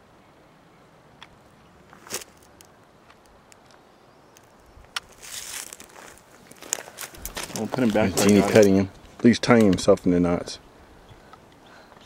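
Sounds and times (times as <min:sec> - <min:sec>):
quiet outdoor background: 0:00.0 - 0:12.0.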